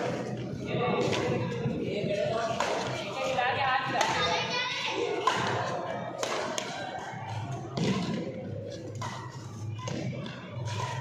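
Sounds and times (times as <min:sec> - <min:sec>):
onlookers chattering: 0:00.0 - 0:11.0
racket hitting shuttlecock: 0:02.5 - 0:03.0, 0:03.9 - 0:04.2, 0:05.0 - 0:11.0.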